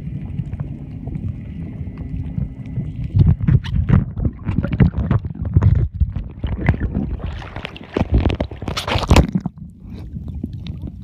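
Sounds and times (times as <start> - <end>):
low rumble: 0.0 - 11.0
muffled underwater sloshing: 0.0 - 11.0
water splashing: 0.0 - 11.0.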